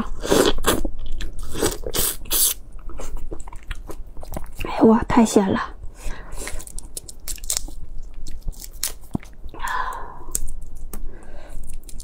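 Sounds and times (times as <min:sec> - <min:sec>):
prawn shell crackling and snapping: 0:06.5 - 0:12.0.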